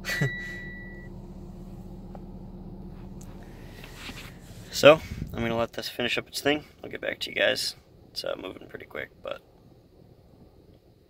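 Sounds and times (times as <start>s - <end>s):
high warning chime: 0.0s - 1.2s
steady hum: 0.0s - 11.0s.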